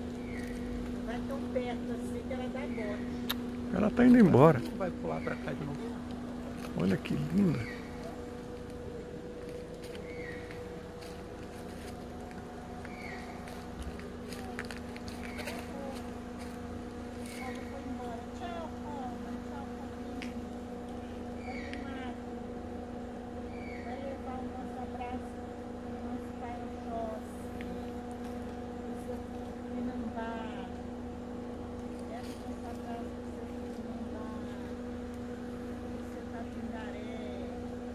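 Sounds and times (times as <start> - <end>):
faint twittering calls: 0.0 - 0.8, 4.3 - 5.6, 6.8 - 8.3, 9.8 - 11.2, 12.8 - 13.8, 15.1 - 15.8, 21.0 - 22.2, 23.4 - 24.3
steady low hum: 0.0 - 37.9
vehicle engine idling: 0.0 - 37.9.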